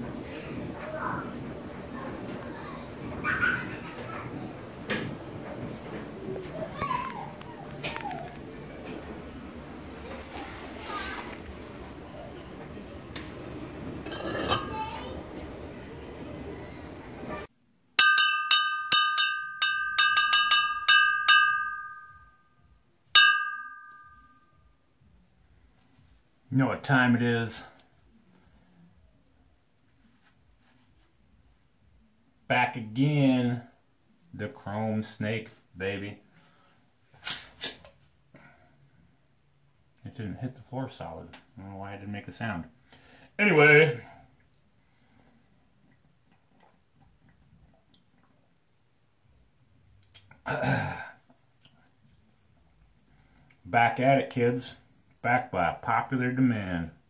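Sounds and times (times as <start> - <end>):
bell dinging: 18.0 - 22.5, 23.2 - 24.6.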